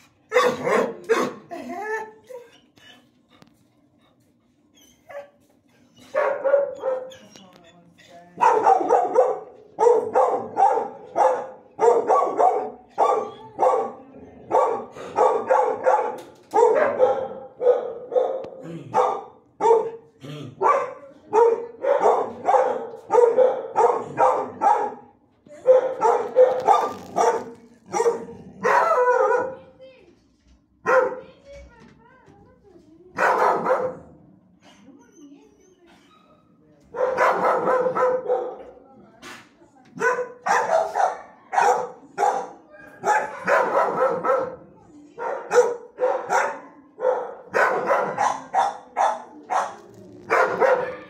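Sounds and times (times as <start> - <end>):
dogs barking in kennels: 0.0 - 3.5, 4.8 - 7.4, 8.4 - 29.8, 30.8 - 31.3, 33.1 - 34.3, 36.9 - 38.8, 39.9 - 51.0.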